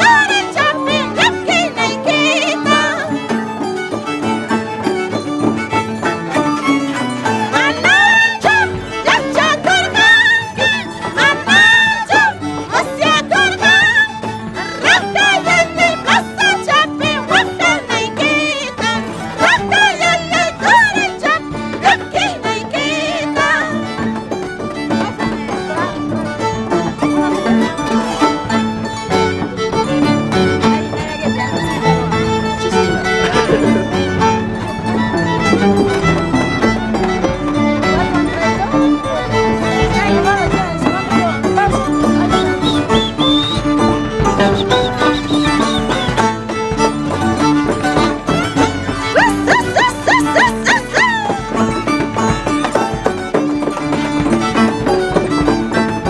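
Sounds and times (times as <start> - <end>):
woman singing: 0.0 - 3.4, 7.4 - 24.1, 49.0 - 51.8
plucked harp: 0.0 - 56.0
violin melody: 0.0 - 56.0.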